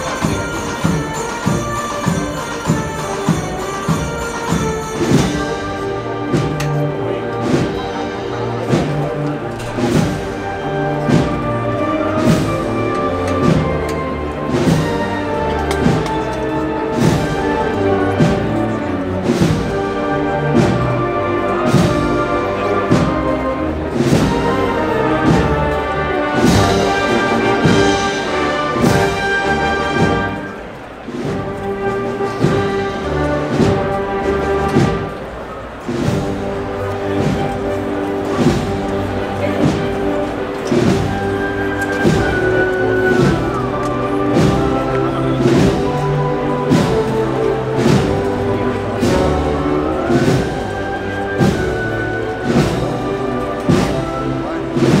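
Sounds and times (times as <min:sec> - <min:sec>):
brass chords: 0:00.0 - 0:55.0
steady drum beat: 0:00.0 - 0:55.0.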